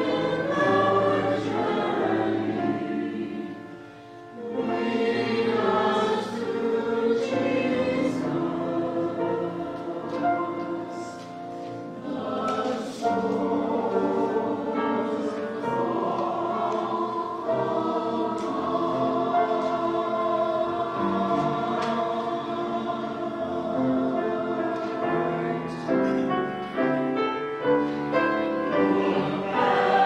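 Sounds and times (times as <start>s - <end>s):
choir singing sustained chords: 0.0s - 30.0s.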